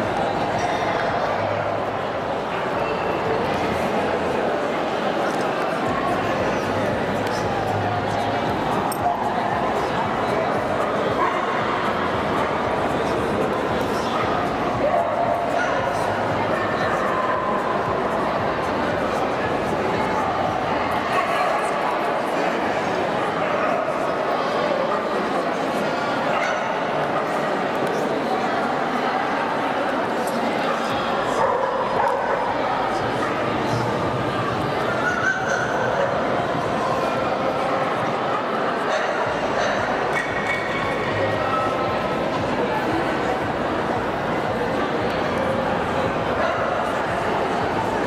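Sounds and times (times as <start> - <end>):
crowd hubbub in a hall: 0.0 - 48.0.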